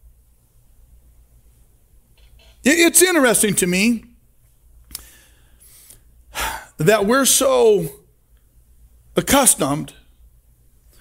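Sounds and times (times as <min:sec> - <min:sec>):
man speaking: 0:02.6 - 0:04.2, 0:06.7 - 0:08.1, 0:09.1 - 0:10.1
mouth click: 0:04.9 - 0:05.1
man drawing sharp breath: 0:04.9 - 0:06.8.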